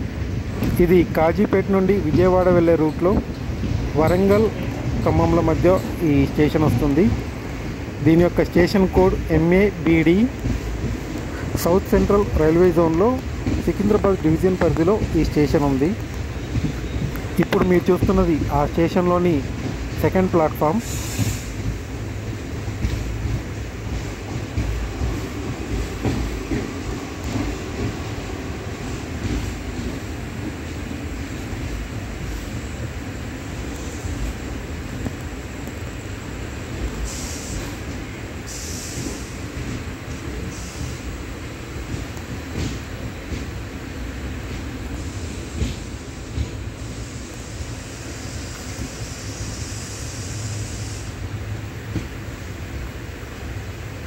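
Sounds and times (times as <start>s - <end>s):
train carriage noise: 0.0s - 54.0s
train wheels rumbling on rails: 0.0s - 54.0s.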